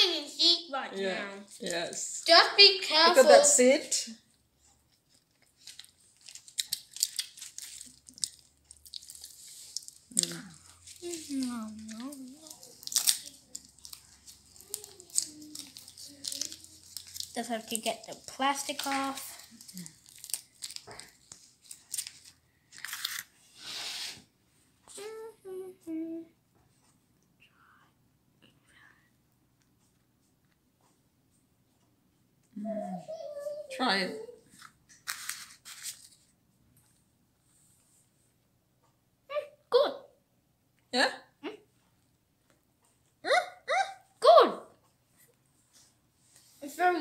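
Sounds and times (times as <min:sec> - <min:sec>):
paper liner crinkling and tearing: 0:05.1 - 0:23.3, 0:34.6 - 0:36.3
person humming while tasting: 0:10.1 - 0:12.6, 0:25.0 - 0:26.4, 0:32.5 - 0:33.1
boy humming while eating: 0:25.0 - 0:26.4
boy saying yeah: 0:32.6 - 0:34.4.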